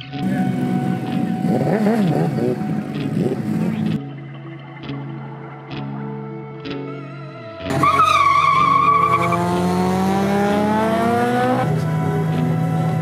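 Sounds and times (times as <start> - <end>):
engine revving up: 0.3 - 4.0, 8.5 - 13.0
tyre squeal: 7.7 - 9.6.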